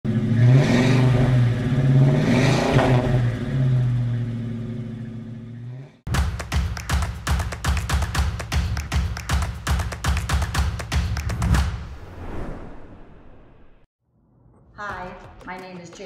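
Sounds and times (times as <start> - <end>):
car engine revving: 0.0 - 6.1
music with steady beat: 6.1 - 11.8.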